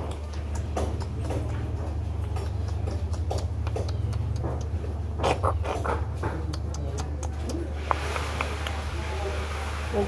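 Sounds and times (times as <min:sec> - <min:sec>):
kitten chewing food: 0:00.0 - 0:08.9.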